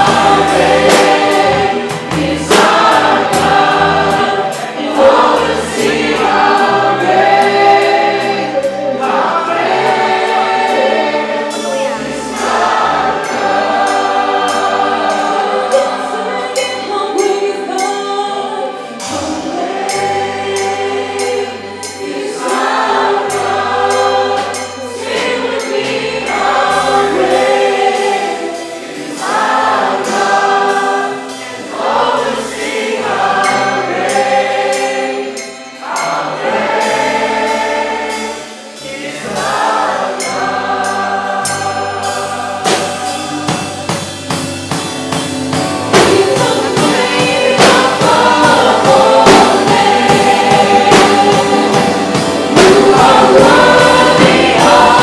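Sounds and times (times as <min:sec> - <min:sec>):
choir singing worship song: 0:00.0 - 0:55.0
drum kit and hand drums: 0:00.0 - 0:55.0.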